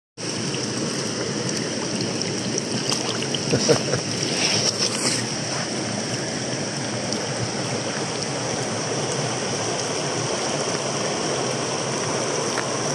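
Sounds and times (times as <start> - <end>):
mountain stream rushing: 0.2 - 12.9
water splashes: 0.2 - 12.9.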